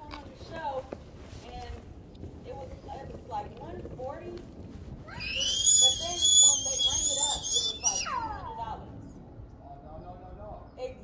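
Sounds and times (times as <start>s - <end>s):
bicycle brakes squealing: 5.2s - 8.1s.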